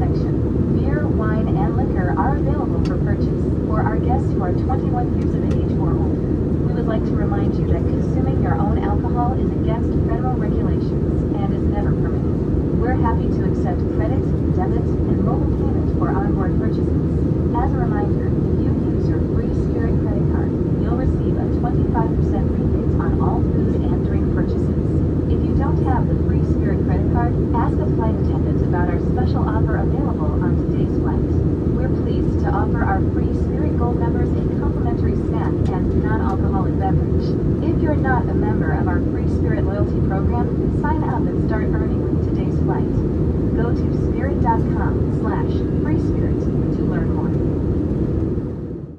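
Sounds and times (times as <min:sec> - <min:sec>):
indistinct passenger chatter: 0:00.0 - 0:47.5
airplane cabin engine rumble: 0:00.0 - 0:48.9.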